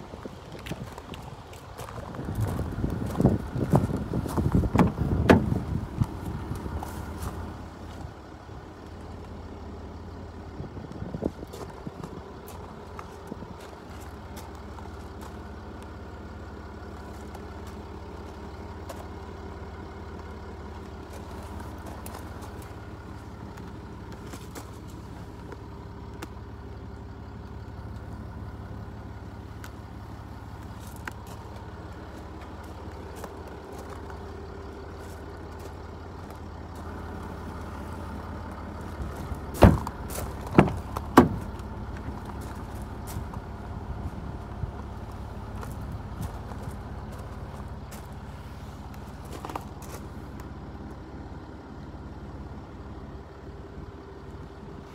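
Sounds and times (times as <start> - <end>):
car engine idling: 0.0 - 54.9
car door shutting: 4.6 - 5.8, 39.5 - 41.6.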